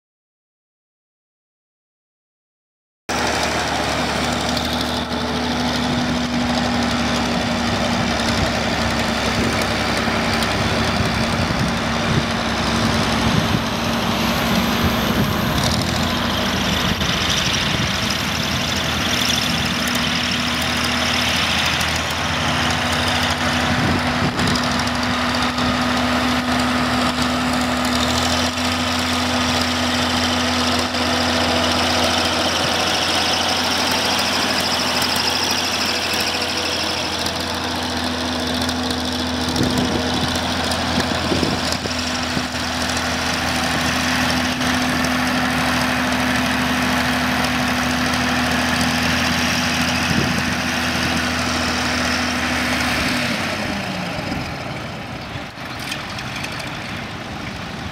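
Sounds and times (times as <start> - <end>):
tractor diesel engine running: 3.1 - 57.9.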